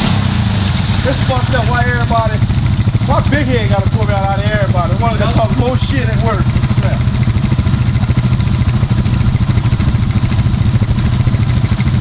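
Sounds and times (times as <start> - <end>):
atv engine idling: 0.0 - 12.0.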